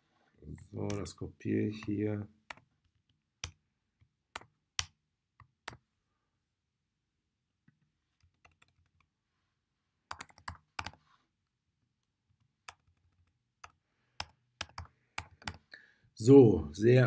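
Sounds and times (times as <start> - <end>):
computer keyboard keystrokes: 1.8 - 3.6, 4.3 - 5.8, 8.2 - 9.1, 10.1 - 11.0, 12.6 - 15.7.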